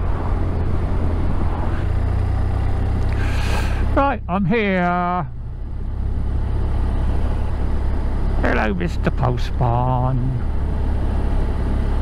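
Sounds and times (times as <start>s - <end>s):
motorcycle engine and wind rumble: 0.0s - 12.0s.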